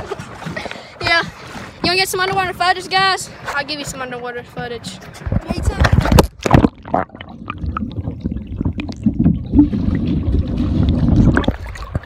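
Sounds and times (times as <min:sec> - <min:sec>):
underwater gurgling and rushing: 0:00.0 - 0:12.0
small clicks and bubbles: 0:05.8 - 0:12.0.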